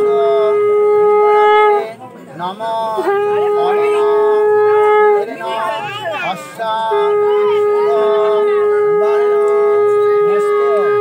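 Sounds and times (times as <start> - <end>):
conch shell blown: 0.0 - 2.0, 2.8 - 11.0.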